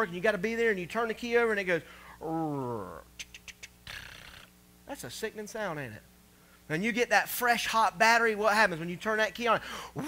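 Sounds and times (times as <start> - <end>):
man imitating car clicks: 3.2 - 4.5.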